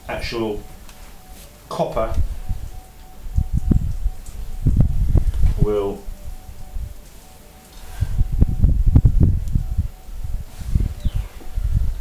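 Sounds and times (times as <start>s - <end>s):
low rumble: 2.0s - 12.0s.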